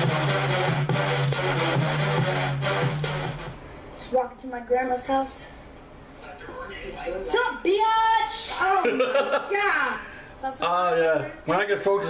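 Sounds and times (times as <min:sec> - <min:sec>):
electronic intro music: 0:00.0 - 0:03.6
gritty rasping beat: 0:00.0 - 0:03.6.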